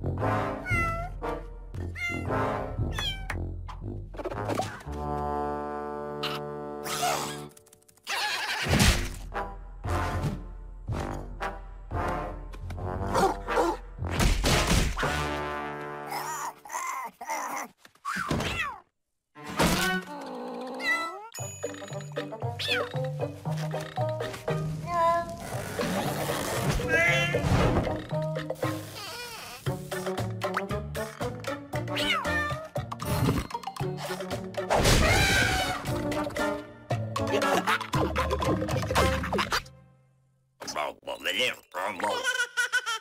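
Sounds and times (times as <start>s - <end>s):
background music: 0.0s - 7.8s, 8.7s - 16.4s, 21.4s - 40.2s
cartoon cat meows: 0.6s - 1.1s, 1.9s - 2.3s, 2.9s - 3.4s, 19.8s - 21.4s, 22.6s - 23.0s, 26.9s - 27.4s, 32.0s - 32.7s.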